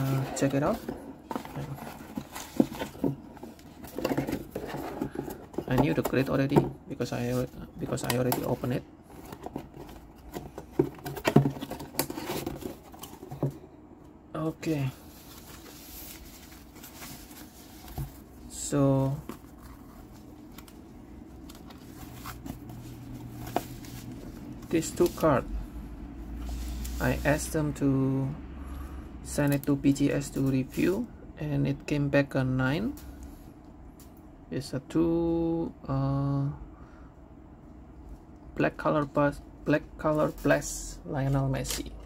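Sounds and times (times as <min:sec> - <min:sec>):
soft rustling of foam wrap: 0:14.6 - 0:25.4.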